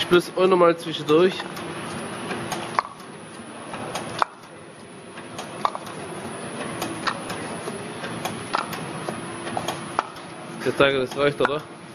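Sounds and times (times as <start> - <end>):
machine humming: 0.0 - 11.9.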